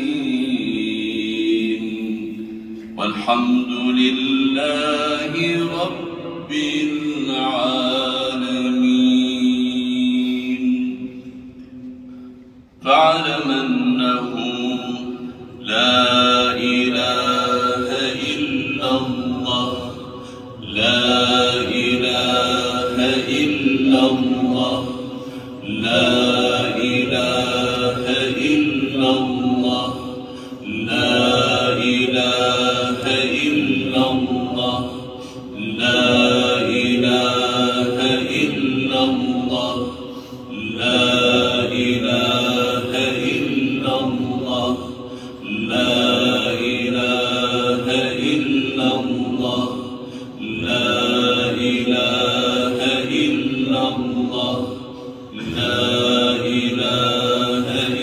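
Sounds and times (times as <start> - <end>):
melodic chanting: 0.0 - 58.0.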